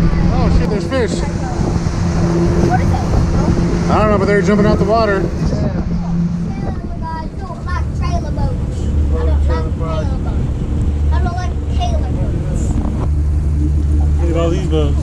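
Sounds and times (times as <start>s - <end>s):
outboard motor droning: 0.0s - 15.0s.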